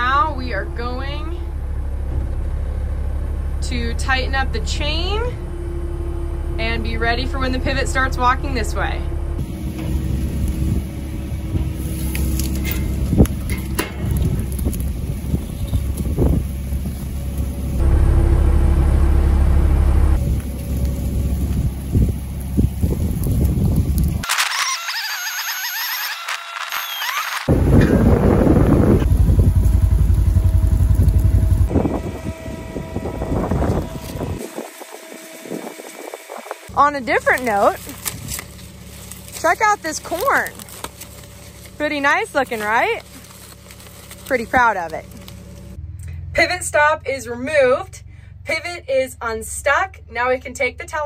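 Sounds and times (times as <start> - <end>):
diesel engine running under load: 0.0 - 24.7, 27.1 - 51.0
higher-pitched noise: 24.2 - 29.1.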